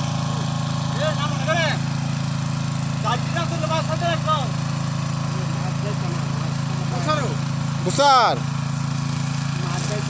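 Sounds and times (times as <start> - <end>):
small engine humming: 0.0 - 10.0.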